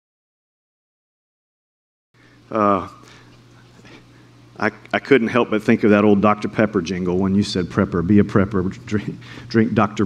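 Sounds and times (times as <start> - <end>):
electrical hum: 2.2 - 10.0
man speaking: 2.5 - 3.2, 4.6 - 10.0.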